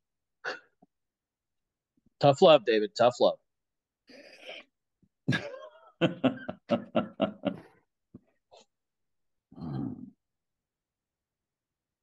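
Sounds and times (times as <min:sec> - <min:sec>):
man laughing: 0:05.3 - 0:07.8.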